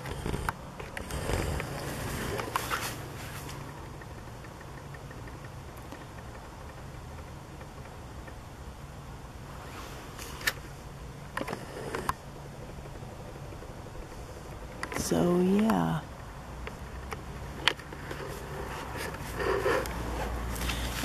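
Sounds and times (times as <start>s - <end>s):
low mechanical hum: 0.0s - 21.0s
faint clicks and taps: 3.4s - 8.4s.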